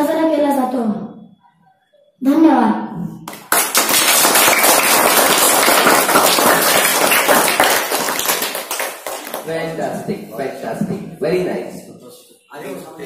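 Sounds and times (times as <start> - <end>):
children applauding: 3.3 - 9.5.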